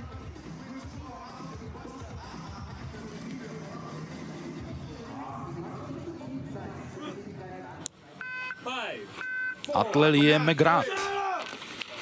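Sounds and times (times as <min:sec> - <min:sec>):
electronic countdown beeps: 0:08.2 - 0:09.6.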